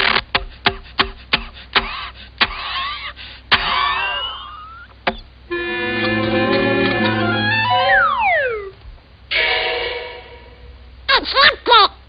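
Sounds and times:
high squeaky gliding sounds: 5.5 - 8.8.

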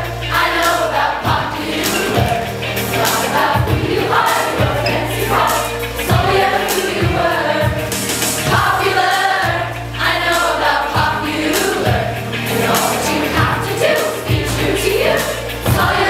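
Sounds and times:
backing track with bass and drums: 0.0 - 16.0
teenagers singing pop song: 0.0 - 16.0.

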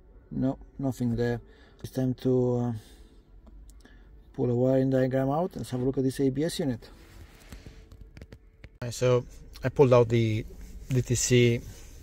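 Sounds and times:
faint steady hum: 0.0 - 12.0
man speaking: 8.8 - 11.7.

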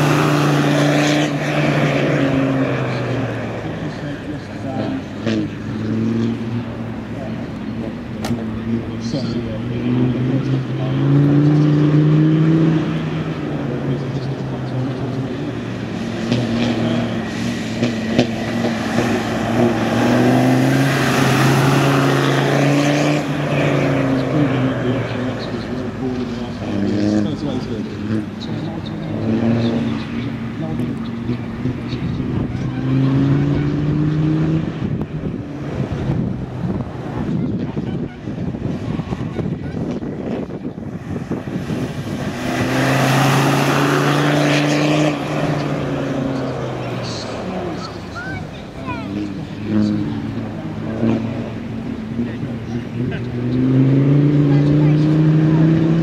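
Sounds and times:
diesel engine accelerating: 0.0 - 56.0.

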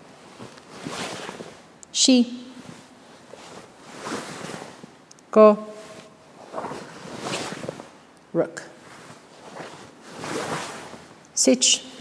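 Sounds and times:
cloth swishing: 0.1 - 1.8, 2.5 - 5.0, 5.6 - 8.1, 8.8 - 11.2.

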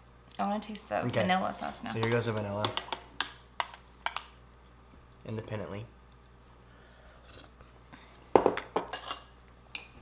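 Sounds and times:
spoon clinking glass bowl: 8.8 - 9.9.

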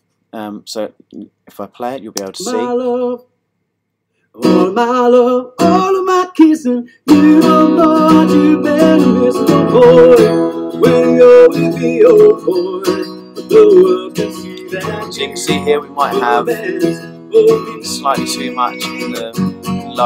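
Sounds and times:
man singing: 2.2 - 3.3, 4.4 - 20.0
strummed acoustic guitar: 2.4 - 3.2, 4.4 - 20.0.

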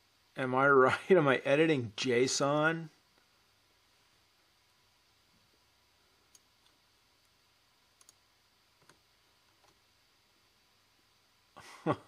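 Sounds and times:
computer mouse clicks: 8.0 - 8.2, 8.8 - 9.8.

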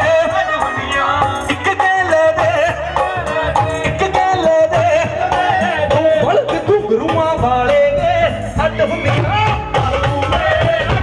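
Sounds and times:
drum kit: 0.0 - 11.0
hand percussion: 0.0 - 11.0
keyboards: 0.0 - 11.0
male singer: 0.0 - 11.0.

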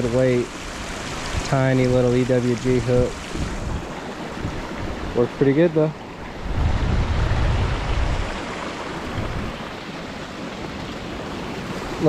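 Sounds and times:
creek water rushing over rocks: 0.0 - 12.0
wind buffeting microphone: 0.0 - 12.0.

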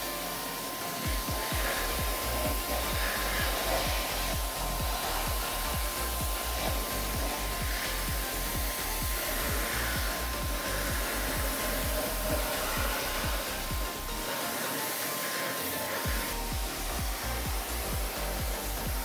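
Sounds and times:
pressure washer spraying water: 0.0 - 19.0.

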